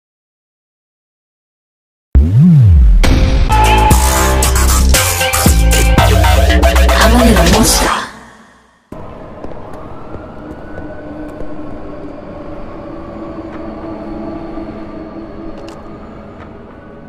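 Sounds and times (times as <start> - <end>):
music: 2.2 - 8.9
ambient drone: 8.1 - 17.0.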